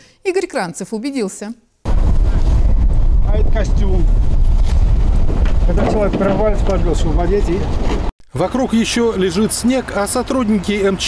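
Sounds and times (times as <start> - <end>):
steady low rumble: 1.9 - 8.1
people talking: 3.3 - 4.1, 5.7 - 7.7, 8.3 - 11.0.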